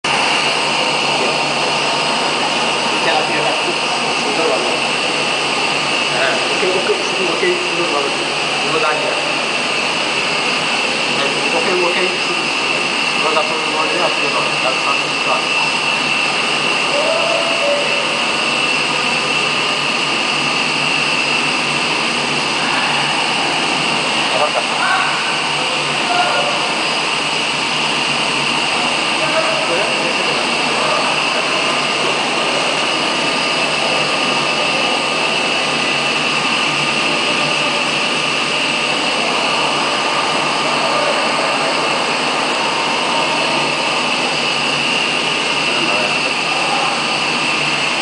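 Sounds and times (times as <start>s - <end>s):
aquarium pumps rushing hiss: 0.1s - 48.0s
thin high whine: 0.1s - 48.0s.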